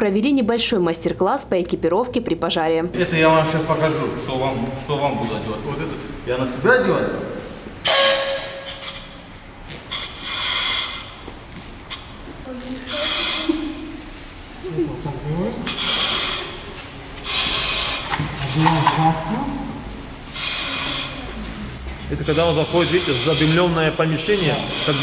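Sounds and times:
breathing mask valve hissing: 9.9 - 11.2, 12.8 - 14.4, 15.6 - 19.0, 20.2 - 21.4, 22.2 - 25.0.

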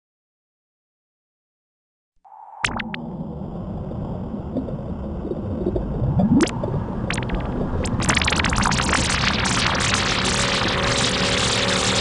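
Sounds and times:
noisy electronic wash: 2.4 - 12.0.

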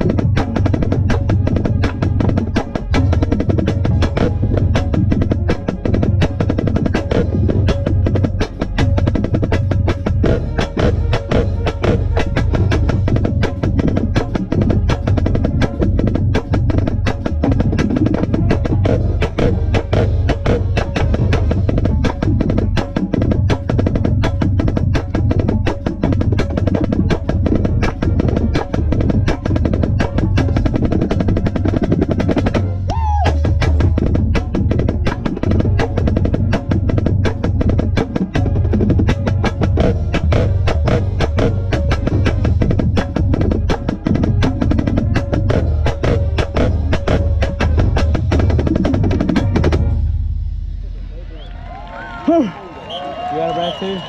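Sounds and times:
marching band playing: 0.0 - 54.0.

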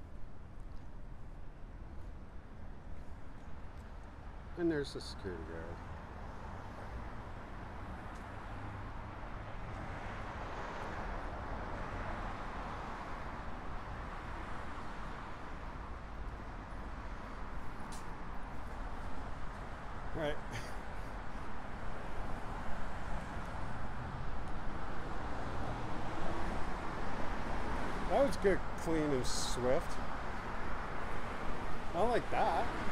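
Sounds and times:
passing cars rumbling: 6.5 - 32.9.

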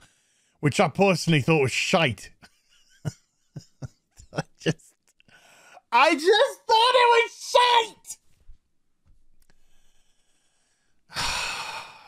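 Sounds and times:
man sighing: 11.1 - 12.0.

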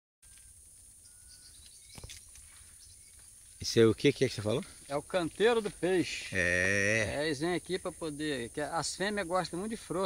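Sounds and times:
distant bird chirps: 0.2 - 4.8
high-pitched insect drone: 0.3 - 3.7.

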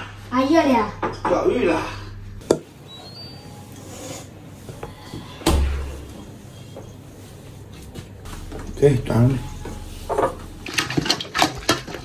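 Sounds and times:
faint kitchen clatter: 2.4 - 12.0.

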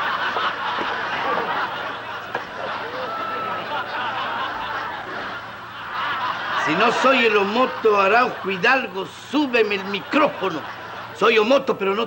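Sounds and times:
audience laughing: 0.0 - 12.0.

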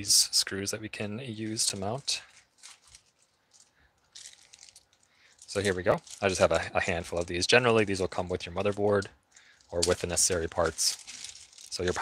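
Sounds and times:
plastic bag crinkling: 1.4 - 12.0.

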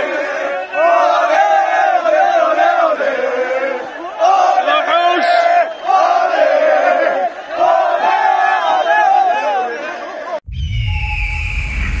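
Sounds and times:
men chanting: 0.0 - 10.4.

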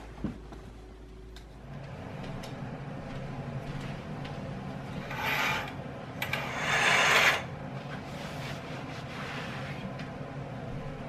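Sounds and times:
curtains scraping along rod: 5.0 - 7.5.

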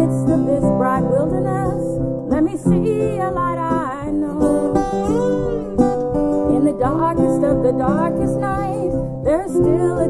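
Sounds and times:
acoustic guitar: 0.0 - 10.0
resonator guitar: 0.0 - 10.0
woman singing long notes: 0.0 - 10.0.

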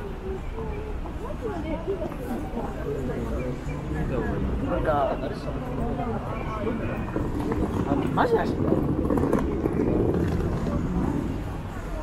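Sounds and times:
low traffic rumble: 0.0 - 12.0
passers-by talking: 0.0 - 12.0.

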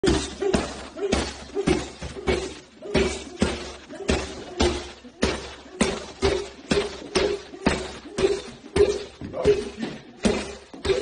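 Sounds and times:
boxing gloves punching pad: 0.0 - 11.0.

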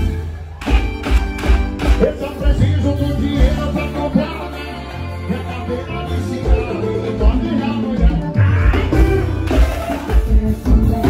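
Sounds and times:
live band music over loudspeakers: 0.0 - 11.0.

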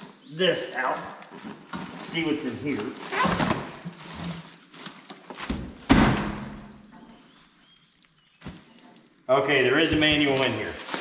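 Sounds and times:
box thud with metallic ring: 5.8 - 6.8.

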